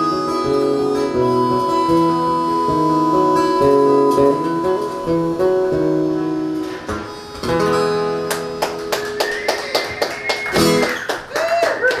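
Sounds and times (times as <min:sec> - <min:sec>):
harmonica held note: 0:00.0 - 0:08.2
acoustic guitar strumming: 0:00.0 - 0:11.3.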